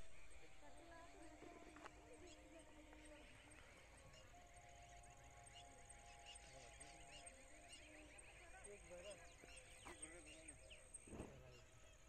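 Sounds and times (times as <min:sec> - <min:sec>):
faint chirps: 0:00.0 - 0:12.0.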